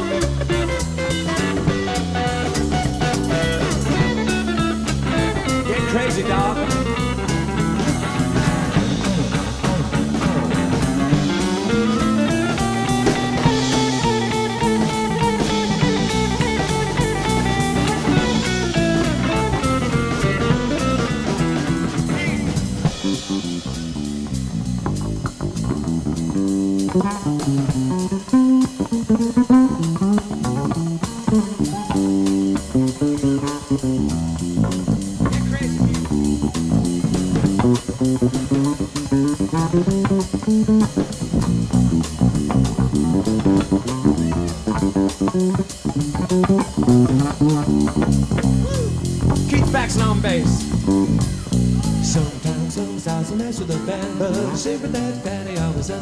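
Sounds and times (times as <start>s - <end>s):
rock band playing blues: 0.0s - 56.0s.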